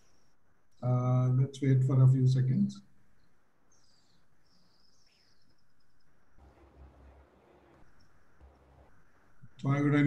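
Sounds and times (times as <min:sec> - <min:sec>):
faint high chirps: 0:02.8 - 0:09.7.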